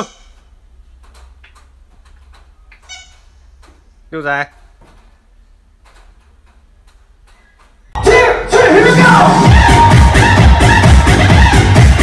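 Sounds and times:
high-pitched squeak: 0:00.0 - 0:00.5, 0:02.8 - 0:03.4.

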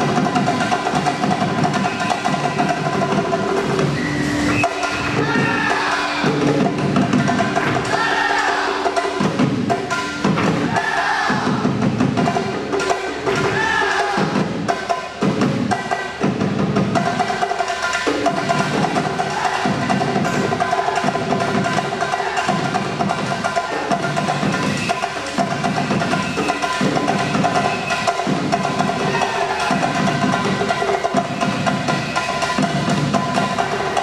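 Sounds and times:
percussion beat: 0:00.0 - 0:34.0
live band playing dance music: 0:11.6 - 0:34.0.

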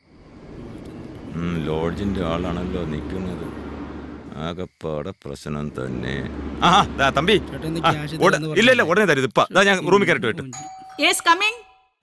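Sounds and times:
doorbell chime: 0:10.6 - 0:11.9.

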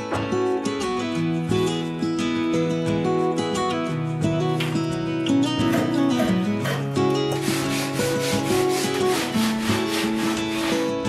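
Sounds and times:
soft guitar music: 0:00.0 - 0:11.0
sandpaper rubbing on wood: 0:06.6 - 0:11.0.

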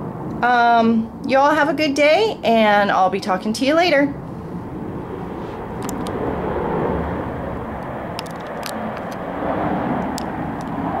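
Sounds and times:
low rumbling noise: 0:00.0 - 0:11.0
faint clicks: 0:05.8 - 0:06.2.

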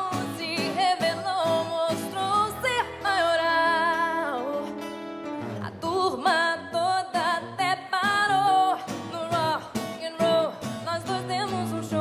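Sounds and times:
woman singing with vibrato: 0:00.0 - 0:05.0, 0:05.6 - 0:12.0
acoustic guitars playing: 0:00.0 - 0:12.0.

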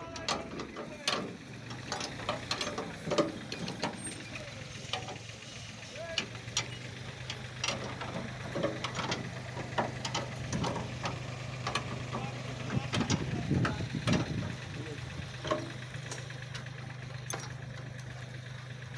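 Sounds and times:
sharp clicks and knocks: 0:00.0 - 0:04.0, 0:04.8 - 0:05.3, 0:06.1 - 0:18.3
low engine hum: 0:00.0 - 0:18.9.

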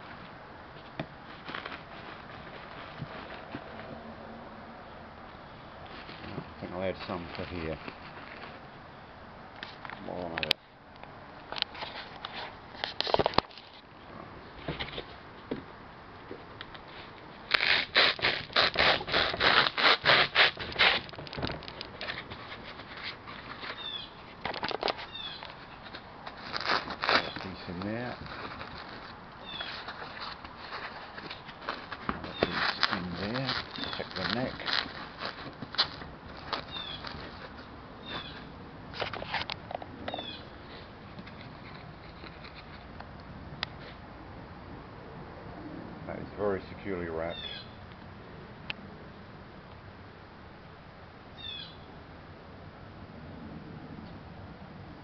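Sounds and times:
bubble wrap and foam crinkling: 0:01.2 - 0:03.7, 0:17.5 - 0:23.9, 0:24.6 - 0:38.4.

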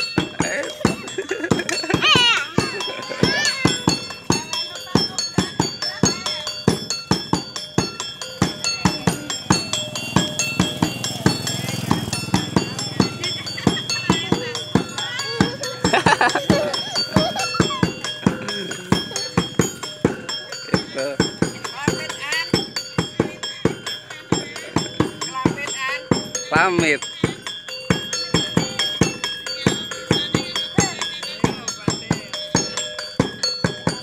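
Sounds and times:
drum beating quickly: 0:00.0 - 0:34.0
small tuned gongs ringing: 0:06.2 - 0:30.7.

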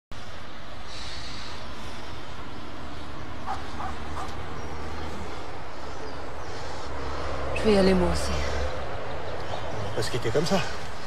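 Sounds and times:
dog barking: 0:03.4 - 0:04.4.

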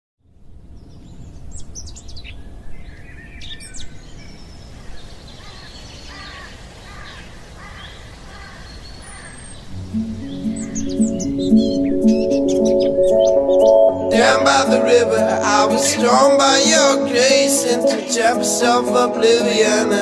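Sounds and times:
steady low background noise: 0:00.3 - 0:20.0
songbirds chirping and singing: 0:01.6 - 0:20.0.

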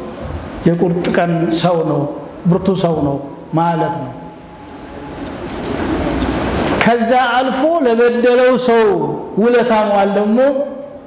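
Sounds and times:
low rushing noise: 0:00.0 - 0:07.9
man's voice: 0:00.6 - 0:04.3, 0:06.8 - 0:10.8.

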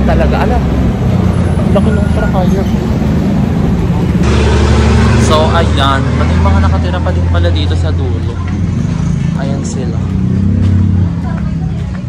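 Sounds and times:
street background rumble: 0:00.0 - 0:12.0.

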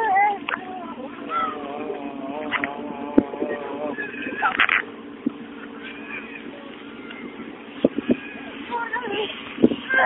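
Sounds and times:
steady low hum: 0:00.0 - 0:10.0
person's long wavering voice: 0:00.9 - 0:04.5.

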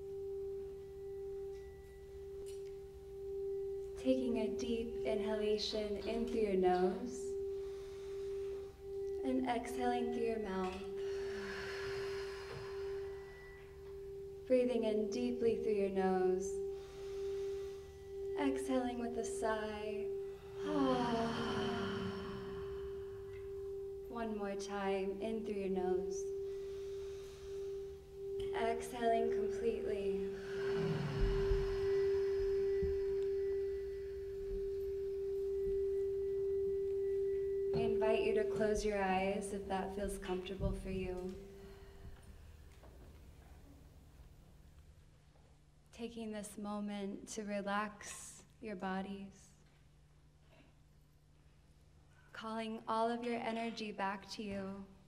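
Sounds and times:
singing bowl tone: 0:00.0 - 0:42.8
people exhaling breath: 0:11.0 - 0:14.0, 0:16.7 - 0:18.2, 0:20.2 - 0:23.8, 0:26.3 - 0:28.2, 0:30.3 - 0:36.5.

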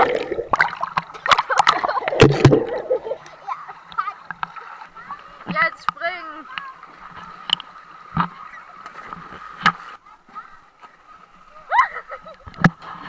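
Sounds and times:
water splashing against camera: 0:00.0 - 0:13.0.

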